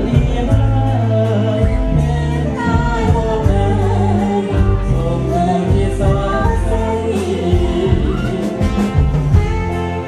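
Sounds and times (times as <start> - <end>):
man and woman singing duet: 0.0 - 9.1
amplified musical accompaniment: 0.0 - 10.0.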